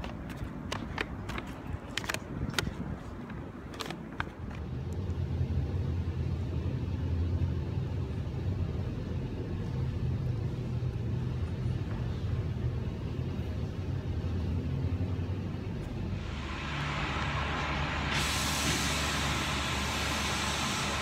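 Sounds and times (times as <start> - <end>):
low rumble with hum: 0.0 - 21.0
steady hiss: 16.0 - 21.0.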